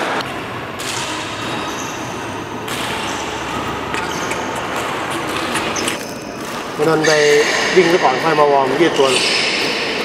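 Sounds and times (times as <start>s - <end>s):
noisy hall background: 0.0s - 10.0s
shoes squeaking on court: 0.2s - 7.6s.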